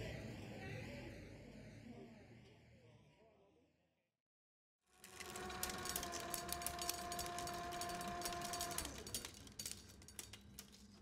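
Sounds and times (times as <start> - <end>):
rapid clatter of ticks: 5.0 - 11.0.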